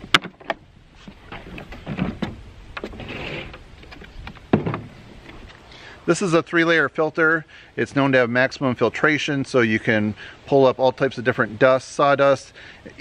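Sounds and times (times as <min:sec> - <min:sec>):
plastic scraping: 0:00.0 - 0:05.5.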